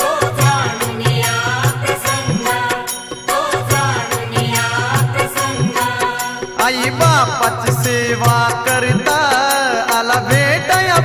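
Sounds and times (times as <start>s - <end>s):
man singing devotional song: 0.0s - 11.0s
percussion beat: 0.0s - 11.0s.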